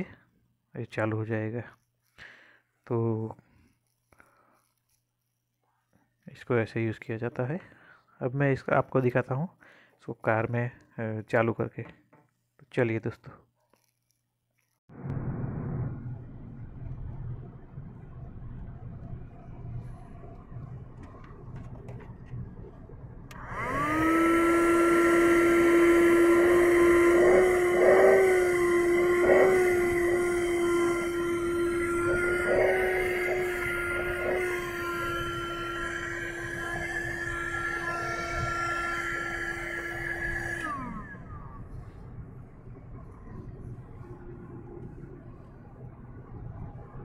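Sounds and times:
car vacuum cleaner motor whine: 23.2 - 46.8.

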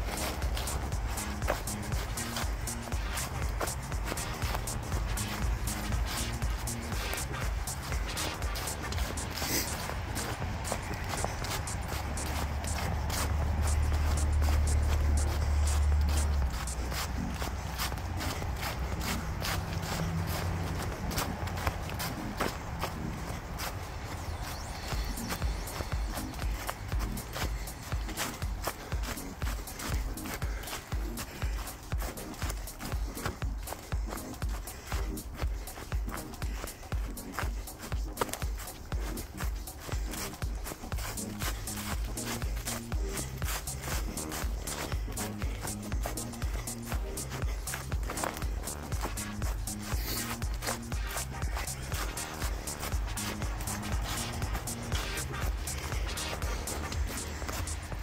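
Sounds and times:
running footsteps on dry leaves: 0.0 - 58.0.

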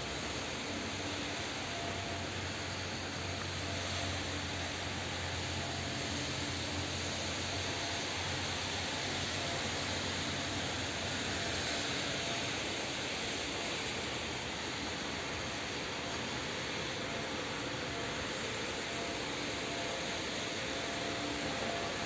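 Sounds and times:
mechanical hum and hiss: 0.0 - 22.0.

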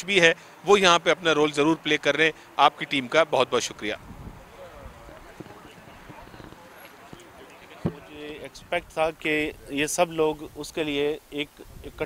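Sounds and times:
distant indistinct voices: 1.4 - 10.1.

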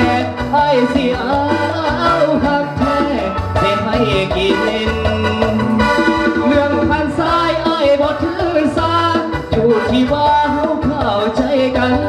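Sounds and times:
amplified instrumental backing: 0.0 - 12.0
man singing into a microphone: 0.0 - 12.0.

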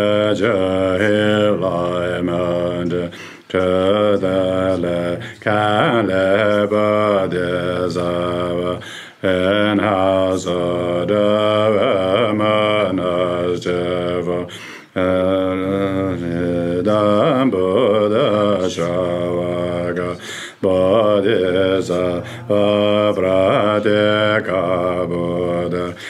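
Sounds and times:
man chanting prayer: 0.0 - 26.0.

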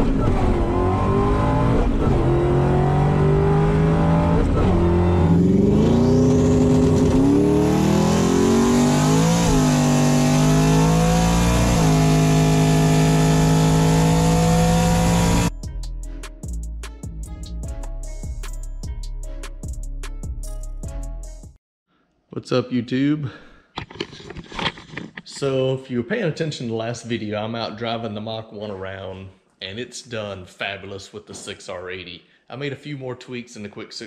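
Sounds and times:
car engine revving at full throttle: 0.0 - 15.5.

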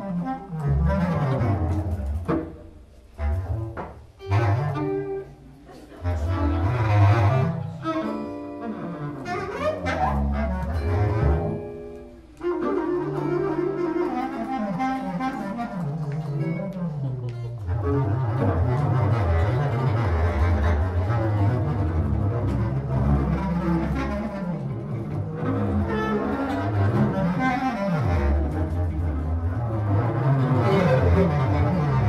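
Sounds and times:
bass clarinet tones: 0.0 - 32.0
bowed cello notes: 0.0 - 32.0.

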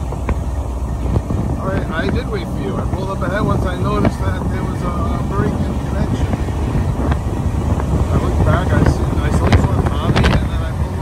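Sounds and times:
motorcycle engine rumble: 0.0 - 11.0
wind buffeting microphone: 0.0 - 11.0.

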